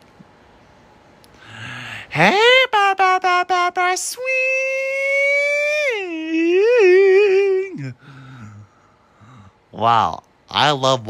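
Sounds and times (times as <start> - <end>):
person singing a long note: 2.1 - 8.0.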